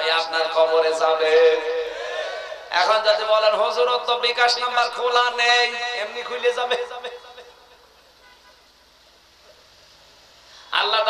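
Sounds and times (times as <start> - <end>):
man speaking into microphone: 0.0 - 2.0, 2.7 - 7.4, 10.7 - 11.0
faint background noise: 0.0 - 11.0.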